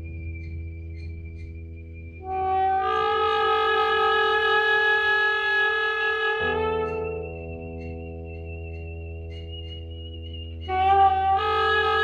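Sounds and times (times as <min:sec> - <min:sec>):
low hum: 0:00.0 - 0:03.4.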